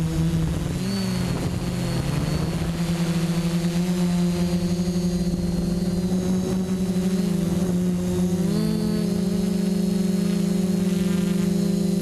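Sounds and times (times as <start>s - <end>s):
drone motors and propellers whining: 0.0s - 12.0s.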